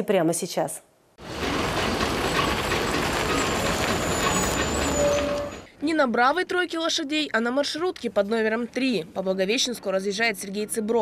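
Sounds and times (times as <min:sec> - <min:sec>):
bus engine rumbling: 0:01.2 - 0:05.8
street traffic noise: 0:01.2 - 0:11.0.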